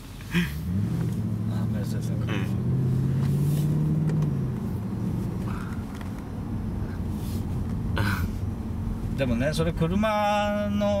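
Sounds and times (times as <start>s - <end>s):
car engine heard from cabin: 0.0s - 11.0s.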